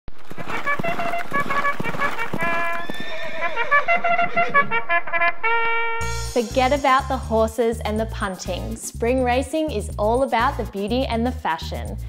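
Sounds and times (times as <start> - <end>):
horse hoofbeats galloping: 0.1 - 5.0
horse whinnying: 0.7 - 4.8.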